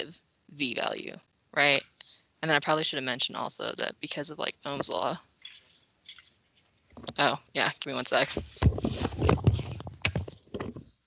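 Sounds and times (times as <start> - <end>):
handling noise on microphone: 4.7 - 11.0.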